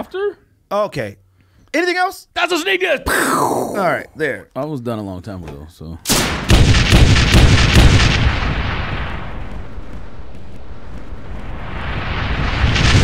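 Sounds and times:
booming explosion impacts: 6.2 - 13.0
rumbling wash: 11.2 - 13.0.

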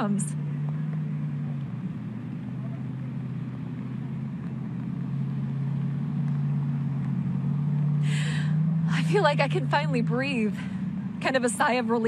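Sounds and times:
motorboat engine idling: 0.0 - 12.0.

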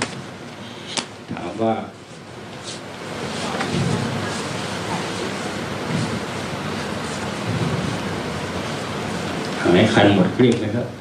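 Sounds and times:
faint low murmurs: 0.4 - 11.0
steady rushing noise: 1.6 - 11.0.

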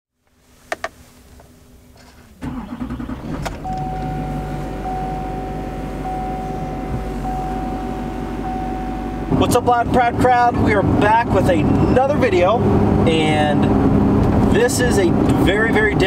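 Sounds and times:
diesel engine starting and idling: 2.3 - 16.0
ignition key clicks: 3.3 - 5.0
dashboard warning chime: 3.6 - 9.7.

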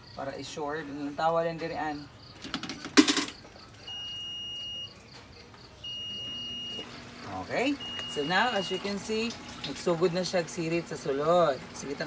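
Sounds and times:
coin clattering through acceptor: 2.4 - 3.4
high electronic beep: 3.8 - 5.0, 5.8 - 6.8, 7.7 - 9.0.

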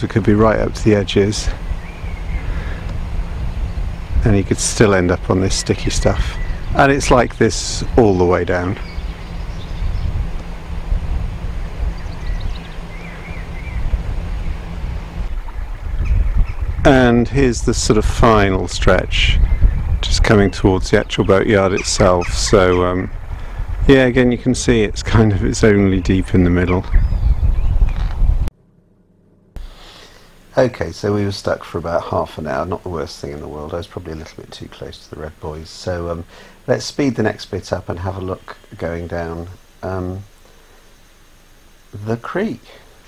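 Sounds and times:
wind buffeting microphone: 0.0 - 28.5
boat engine running at low revs: 0.0 - 29.8.

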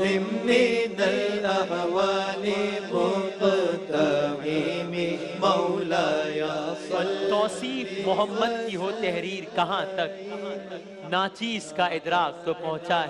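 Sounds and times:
men chanting devotional song: 0.0 - 13.0.

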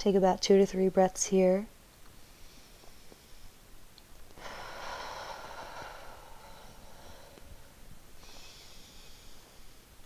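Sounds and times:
person breathing: 2.2 - 3.6, 4.4 - 10.0.

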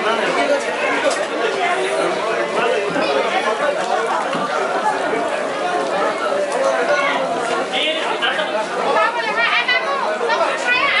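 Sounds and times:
group chatting: 0.0 - 11.0.

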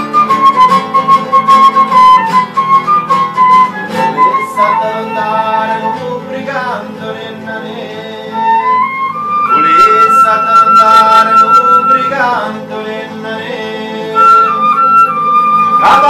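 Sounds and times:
flute melody: 0.0 - 6.8, 8.2 - 12.7, 13.9 - 16.0
strummed acoustic guitar: 0.0 - 16.0.

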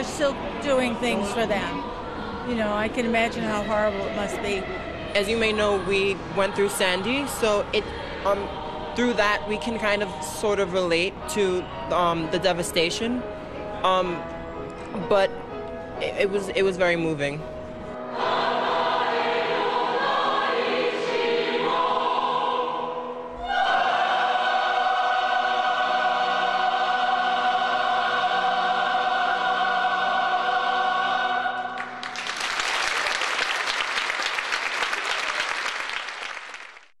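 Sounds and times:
mixed choir singing: 0.0 - 12.2, 18.0 - 32.3
audience applause: 31.8 - 37.0.

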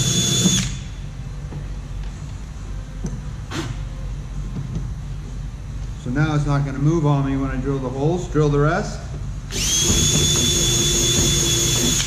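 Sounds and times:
cordless drill whining: 0.0 - 0.8, 9.5 - 12.0
low background hum: 0.0 - 12.0.

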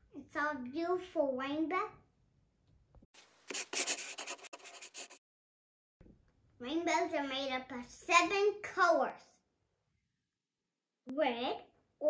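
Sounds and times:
marker scribbling on paper: 3.5 - 5.2.

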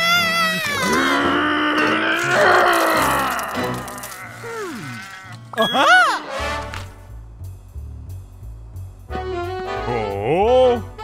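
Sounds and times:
cartoon voice grunting and groaning: 0.0 - 5.1
background music: 0.0 - 11.0.

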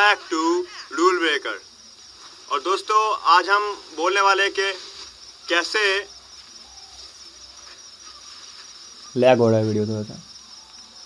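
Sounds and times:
crickets trilling: 0.0 - 11.0.

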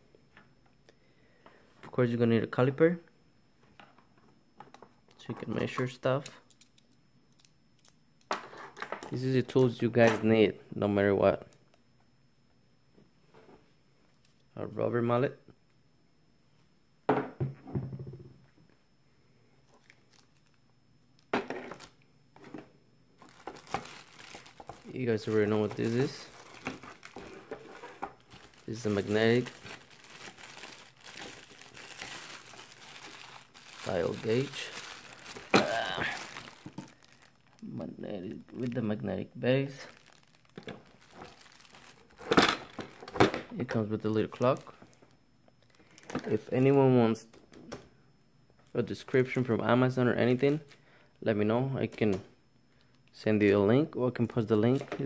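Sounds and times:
plastic bag crinkling: 23.2 - 37.7, 39.6 - 43.3, 44.2 - 46.4.

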